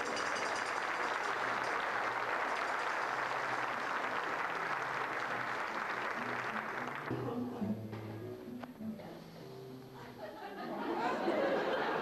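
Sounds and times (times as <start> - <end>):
audience applauding: 0.0 - 7.1.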